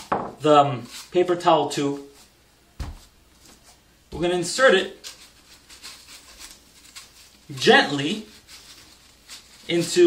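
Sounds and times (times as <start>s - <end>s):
cardboard tube scraping: 4.9s - 10.0s.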